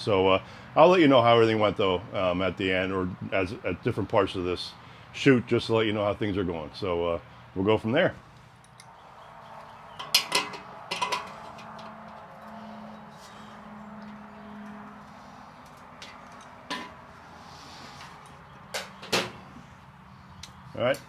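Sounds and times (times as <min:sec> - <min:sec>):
metal parts clanking: 0:10.0 - 0:12.2.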